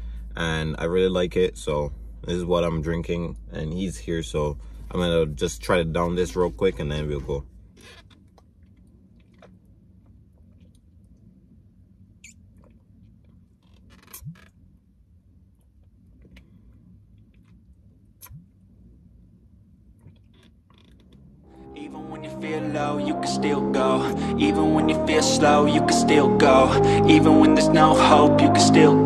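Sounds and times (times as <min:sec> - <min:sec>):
low steady hum: 0:00.0 - 0:29.0
swallowing and gulping: 0:09.2 - 0:09.6.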